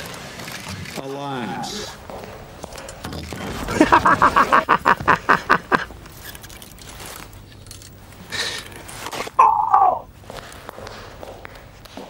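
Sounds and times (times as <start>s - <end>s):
man laughing hard: 3.7s - 5.9s.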